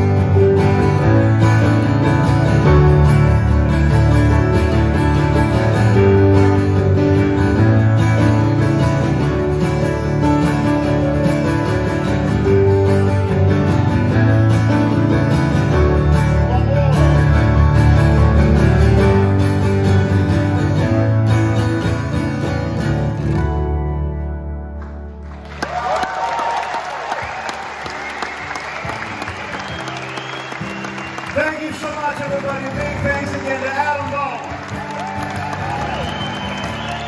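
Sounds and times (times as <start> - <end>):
acoustic guitar playing: 0.0 - 25.6, 27.2 - 37.0.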